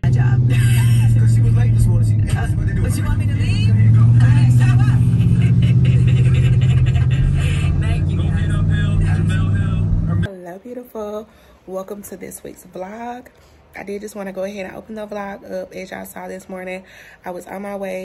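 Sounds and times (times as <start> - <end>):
car interior drone: 0.0 - 10.3
voices talking: 0.0 - 11.1.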